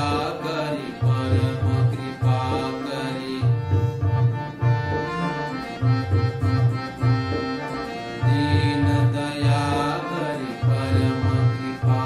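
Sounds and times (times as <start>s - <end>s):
harmonium melody: 0.0s - 12.0s.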